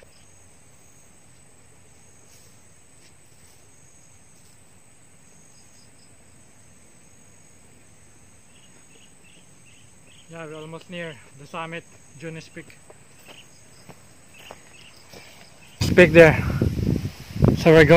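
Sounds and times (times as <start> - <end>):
insect chorus trilling: 0.0 - 17.9
soft chirps: 13.1 - 15.8.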